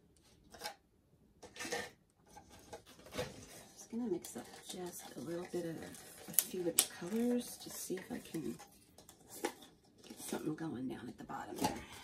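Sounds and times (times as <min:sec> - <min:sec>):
paint cups knocking and scraping: 0:01.4 - 0:10.4.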